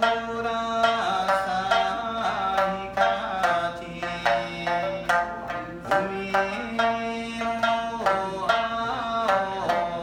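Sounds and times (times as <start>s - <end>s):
man singing: 0.0s - 10.0s
plucked string instrument: 0.0s - 10.0s.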